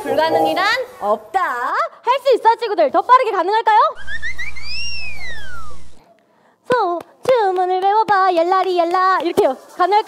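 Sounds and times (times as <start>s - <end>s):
cartoon whistle-like tone: 4.0s - 6.0s.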